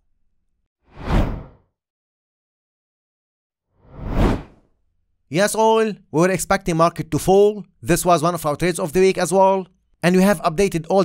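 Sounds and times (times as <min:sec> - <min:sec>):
whoosh: 0:00.9 - 0:01.5, 0:03.8 - 0:04.6.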